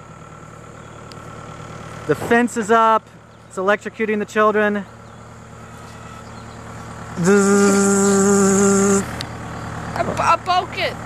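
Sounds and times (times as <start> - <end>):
person holding a buzzy note: 7.2 - 9.0.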